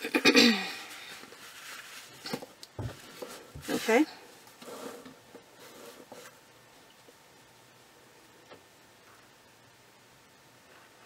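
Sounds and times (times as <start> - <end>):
person coughing: 0.0 - 0.8
fabric rustling and tapping: 2.2 - 3.9.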